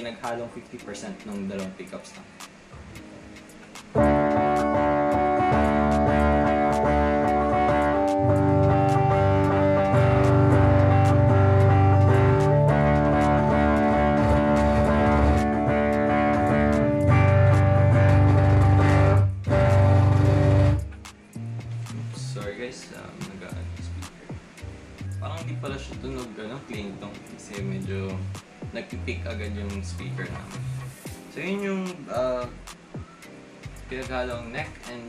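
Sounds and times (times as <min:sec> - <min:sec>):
electric guitar strummed chords: 0:02.8 - 0:22.6.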